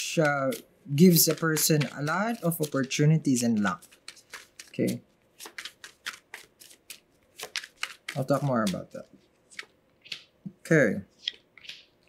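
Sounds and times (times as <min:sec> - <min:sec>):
cards being shuffled: 0:00.1 - 0:10.4, 0:11.1 - 0:12.0.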